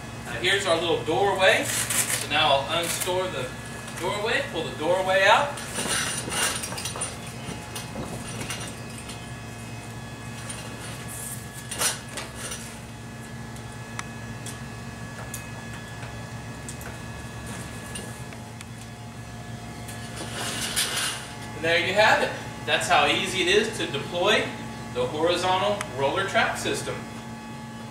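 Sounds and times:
steady low hum: 0.0 - 27.9
vinyl curtain rustling and scraping: 1.6 - 3.2, 5.4 - 8.8, 20.0 - 21.3.

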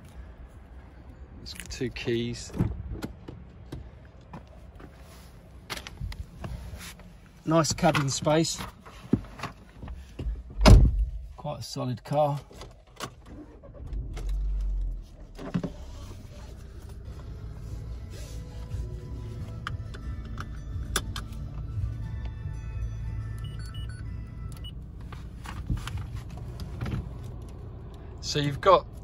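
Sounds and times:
car engine and road rumble: 0.0 - 29.0
heavy low thump: 10.2 - 11.2.

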